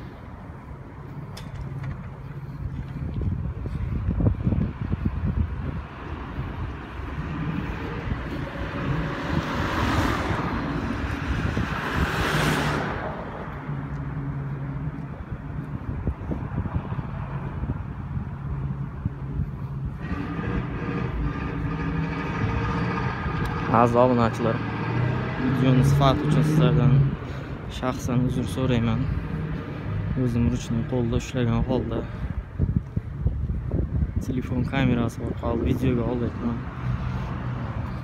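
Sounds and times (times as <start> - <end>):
vehicles passing by: 0.0 - 38.0.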